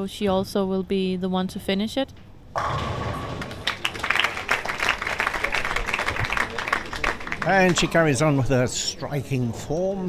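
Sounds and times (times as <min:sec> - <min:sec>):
bowling pins clattering: 0:02.6 - 0:04.7
spectators clapping: 0:03.2 - 0:08.4.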